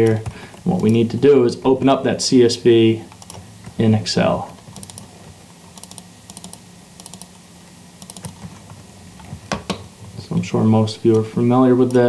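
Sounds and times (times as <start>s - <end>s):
faint low hum: 0.0s - 12.0s
mouse and keyboard clicks: 5.8s - 7.3s, 8.0s - 8.4s.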